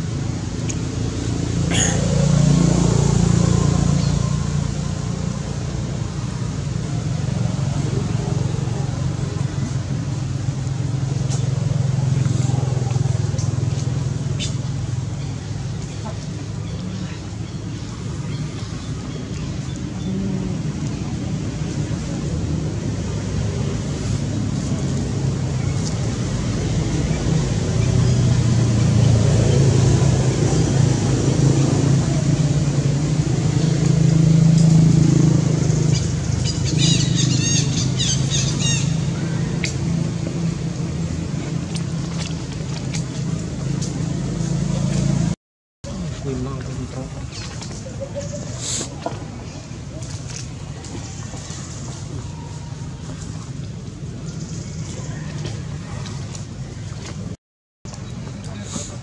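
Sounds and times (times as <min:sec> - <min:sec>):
vehicle engine rumble: 0:00.0 - 0:59.0.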